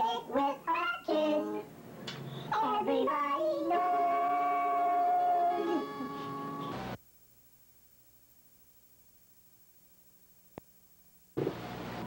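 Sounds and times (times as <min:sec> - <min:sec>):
sped-up high-pitched singing: 0:00.0 - 0:01.7, 0:02.5 - 0:06.7.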